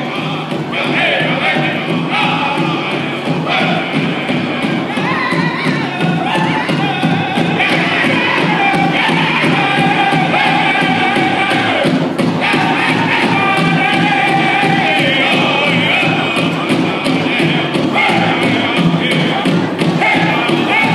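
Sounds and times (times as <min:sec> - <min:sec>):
big drum beating steadily: 0:00.0 - 0:20.9
voices chanting in high notes: 0:00.0 - 0:20.9.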